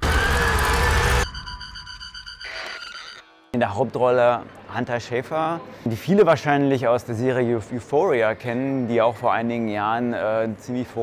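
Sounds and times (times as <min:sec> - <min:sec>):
high tones pulsing rapidly: 0:00.0 - 0:03.6
faint rising tone: 0:00.9 - 0:03.6.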